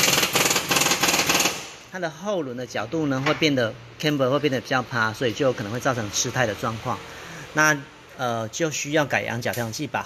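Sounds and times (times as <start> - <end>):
pneumatic impact wrench rattling: 0.0 - 1.9.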